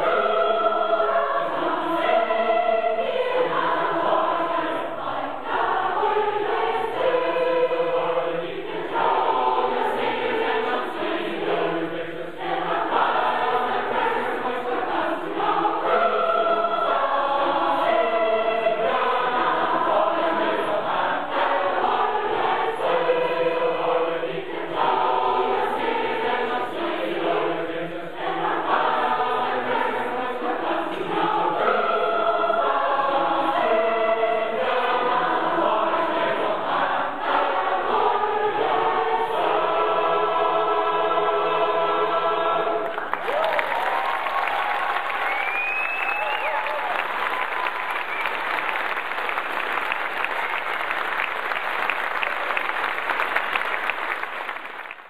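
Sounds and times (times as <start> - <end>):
large choir singing: 0.0 - 55.0
audience applause: 42.8 - 55.0.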